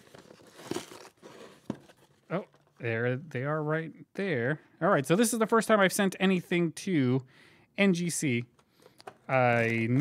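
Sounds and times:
cardboard box and paper rustling: 0:00.0 - 0:02.2.

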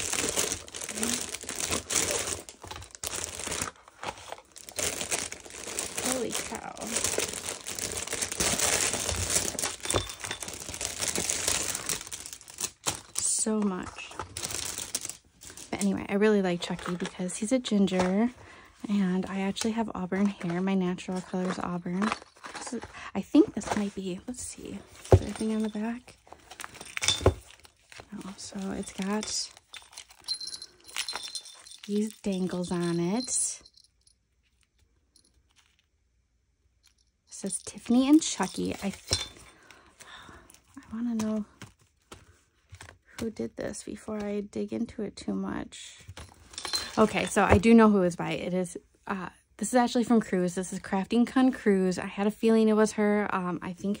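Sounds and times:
wrapping paper crinkling: 0:00.0 - 0:15.9, 0:24.8 - 0:33.3.

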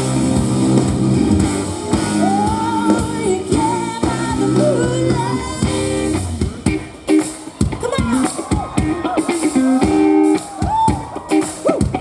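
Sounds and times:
pop-rock band playing: 0:00.0 - 0:12.0
woman singing: 0:02.1 - 0:06.1.

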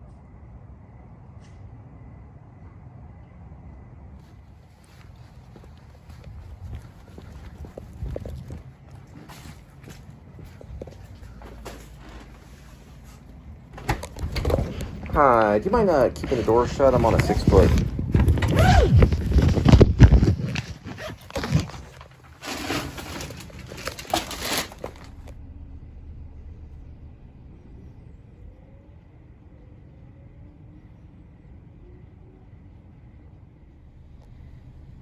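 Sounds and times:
faint low rumble: 0:00.0 - 0:35.0.

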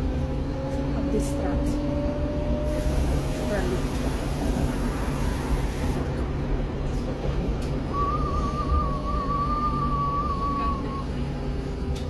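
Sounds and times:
bus low rumble: 0:00.0 - 0:12.0.

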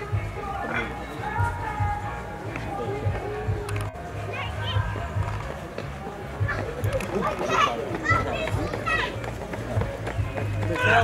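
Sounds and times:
people and children chattering: 0:00.0 - 0:11.0.

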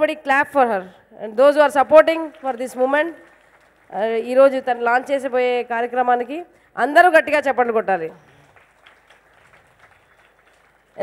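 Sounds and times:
seated audience ambience: 0:01.0 - 0:11.0.

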